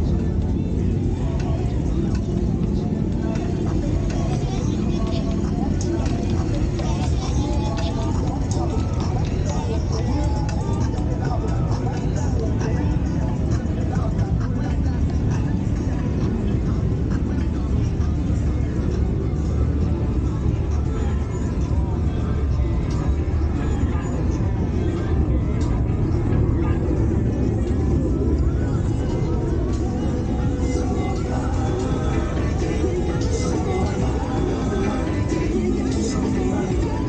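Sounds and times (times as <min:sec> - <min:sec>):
background music: 0:00.0 - 0:37.0
background voices: 0:00.0 - 0:37.0.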